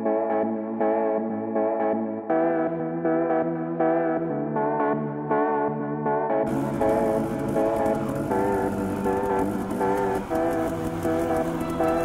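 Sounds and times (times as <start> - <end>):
guitar instrumental music: 0.0 - 12.0
low bass: 0.0 - 12.0.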